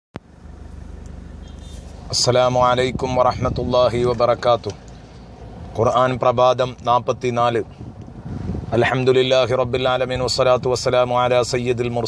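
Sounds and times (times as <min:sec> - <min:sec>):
low hum: 0:00.2 - 0:12.0.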